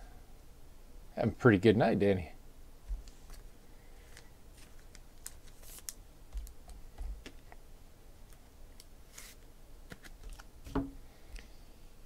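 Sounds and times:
card rustling scrape: 4.0 - 6.0, 9.1 - 10.4.

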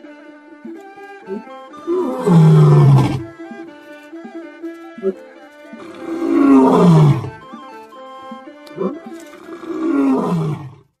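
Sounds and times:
lion roaring: 1.8 - 3.3, 5.8 - 7.4, 8.8 - 10.8.

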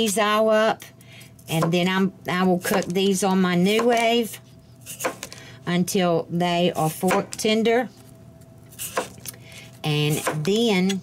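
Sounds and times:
knife slicing through potato: 4.8 - 5.2, 8.7 - 9.2.

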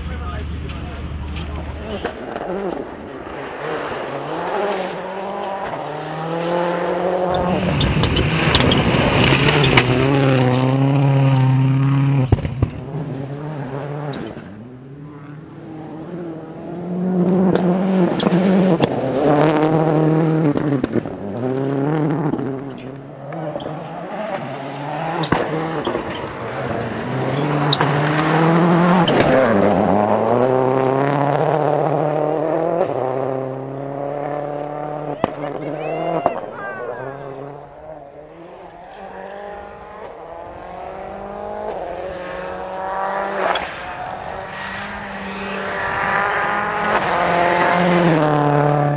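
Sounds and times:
rally car engine revving: 0.0 - 48.9
tyres on loose gravel: 7.4 - 11.5.

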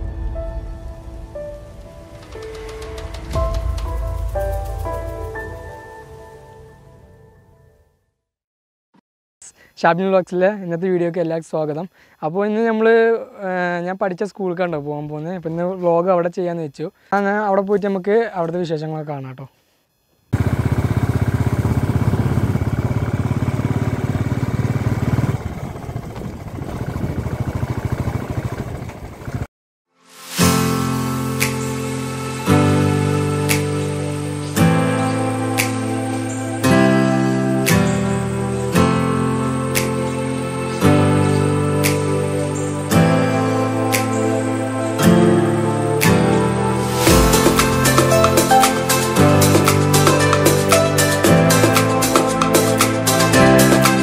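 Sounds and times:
motorcycle engine running: 20.4 - 29.5
held synth notes: 30.6 - 54.0.

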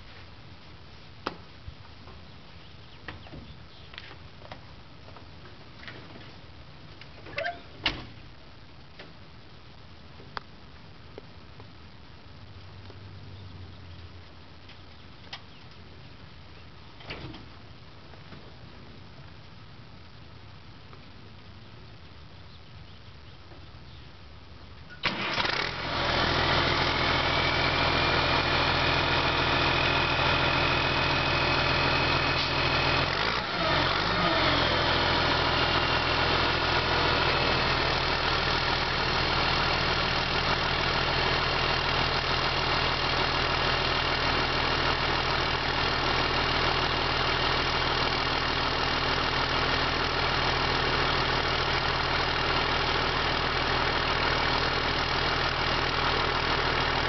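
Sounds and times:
hydraulic whine: 25.0 - 48.2
diesel engine starting and running: 25.0 - 57.0.

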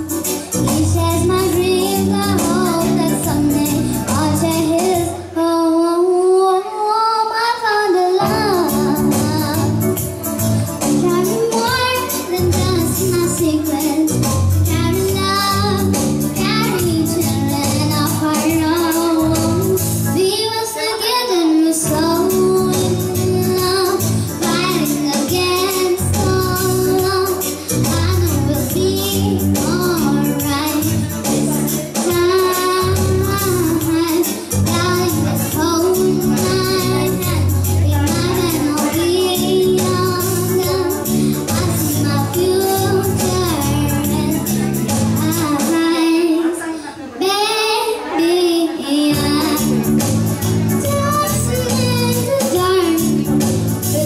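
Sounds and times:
electronic keyboard accompaniment: 0.0 - 54.0
girl singing into a microphone: 0.0 - 54.0.

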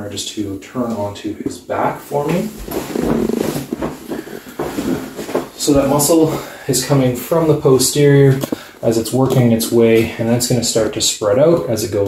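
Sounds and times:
sheets and clothing rustling: 1.8 - 6.5
massage table creaking: 2.2 - 6.3.

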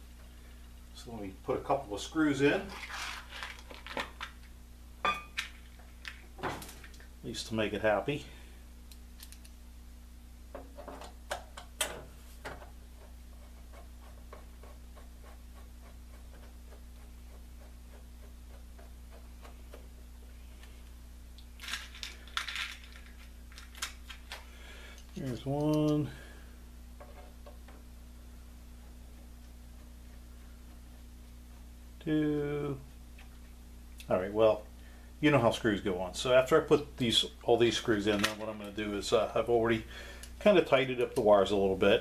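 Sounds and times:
steady low hum: 0.0 - 42.0.

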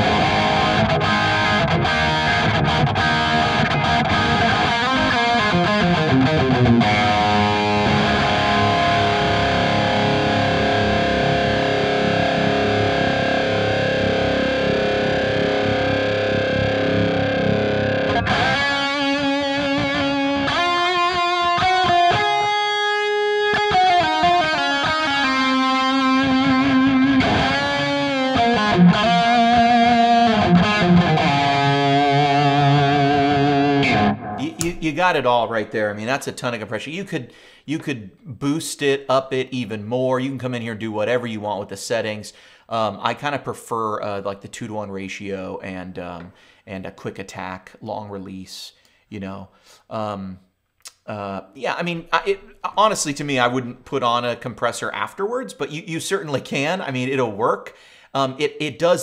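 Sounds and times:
distorted electric guitar: 0.0 - 35.6.

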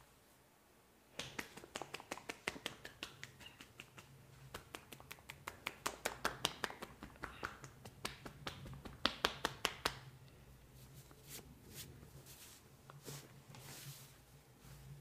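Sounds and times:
palms clapping on head: 1.2 - 10.1.

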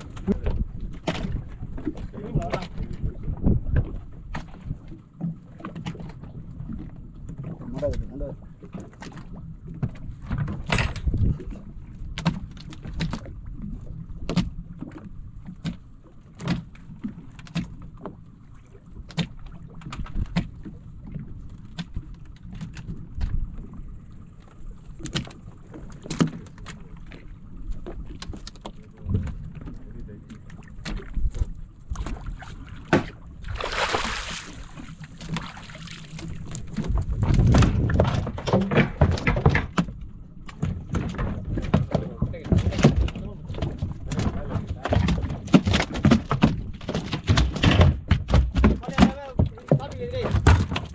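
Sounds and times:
sharp knocks and splashes: 0.0 - 23.8, 24.4 - 50.9
low steady rumble: 0.0 - 50.9
water lapping against boat hull: 0.0 - 50.9.

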